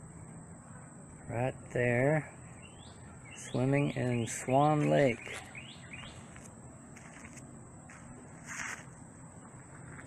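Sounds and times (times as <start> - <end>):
high constant tone: 0.0 - 10.0.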